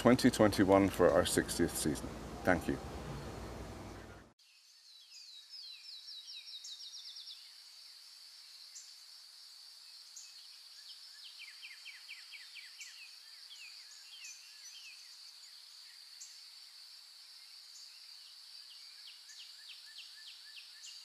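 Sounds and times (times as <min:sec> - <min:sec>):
songbirds singing: 0:00.0 - 0:08.0, 0:10.1 - 0:16.5.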